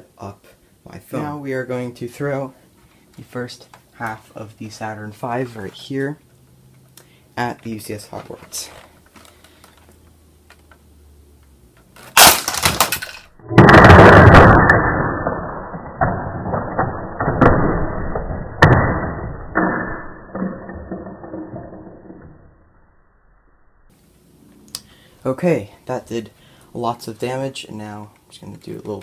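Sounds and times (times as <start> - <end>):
plastic bricks clattering: 12.0 - 14.6
slowed-down deep crash: 13.4 - 23.9.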